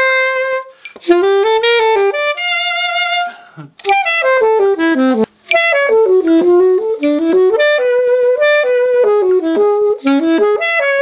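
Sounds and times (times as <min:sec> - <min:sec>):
alto saxophone playing: 0:00.0 - 0:11.0.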